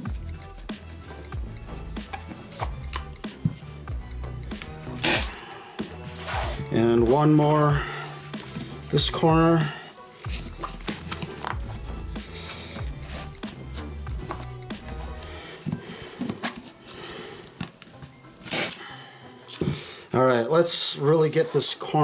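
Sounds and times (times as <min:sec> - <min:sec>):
background music with bass line: 0:00.0 - 0:16.4
sharp snap: 0:04.5 - 0:06.0.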